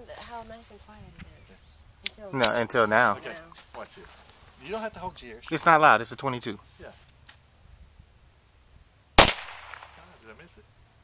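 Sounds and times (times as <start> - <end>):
pistol shot crack: 9.2 - 10.2.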